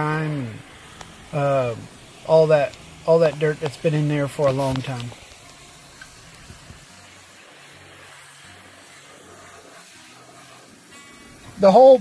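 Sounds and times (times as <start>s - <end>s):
pressure washer spraying water: 0.0s - 12.0s.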